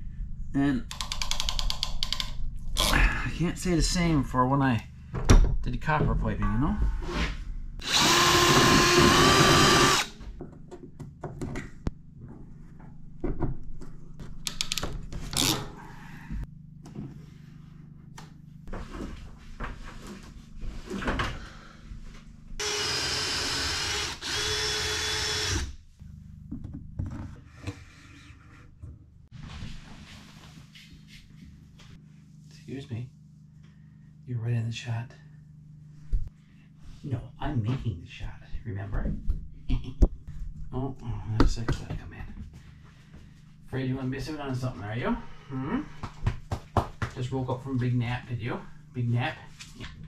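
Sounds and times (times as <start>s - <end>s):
power drill whining: 7.8s - 10.2s, 22.6s - 25.8s.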